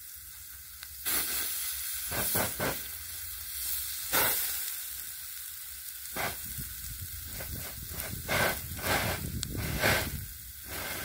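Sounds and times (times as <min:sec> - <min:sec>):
vegetables sizzling on hot plate: 0:00.0 - 0:11.0.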